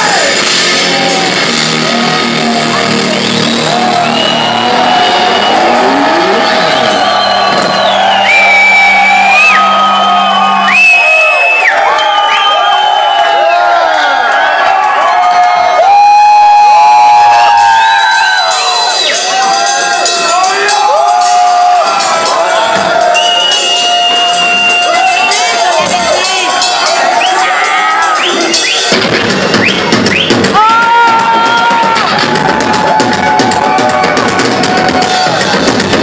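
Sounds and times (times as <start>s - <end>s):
crowd cheering and whistling: 0.0s - 36.0s.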